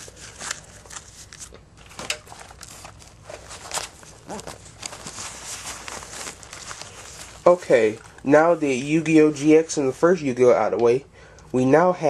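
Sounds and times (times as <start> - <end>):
trading cards rustling: 0.0 - 10.2.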